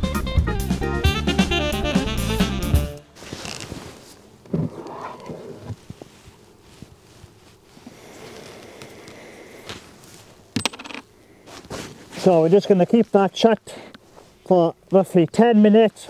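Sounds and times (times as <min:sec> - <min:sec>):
cloth rustling and scraping: 0:03.1 - 0:10.5, 0:11.4 - 0:13.3.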